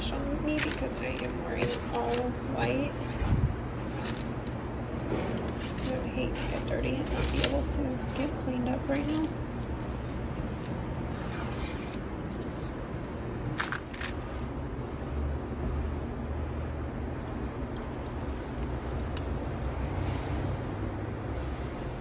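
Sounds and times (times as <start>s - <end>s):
steady low rumble: 0.0s - 20.0s
spatula scraping sheet pan: 0.6s - 4.3s, 5.4s - 9.4s, 11.1s - 12.8s.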